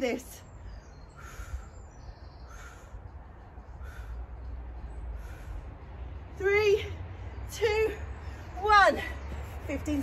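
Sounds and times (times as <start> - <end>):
crow cawing: 2.5 - 3.0, 3.8 - 4.2.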